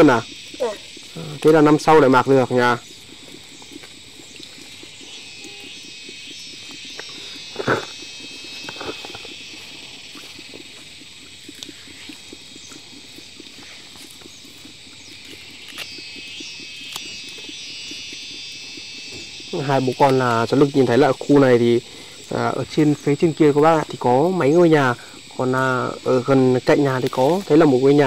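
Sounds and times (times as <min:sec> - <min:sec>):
insects chirring: 0:00.0 - 0:28.0.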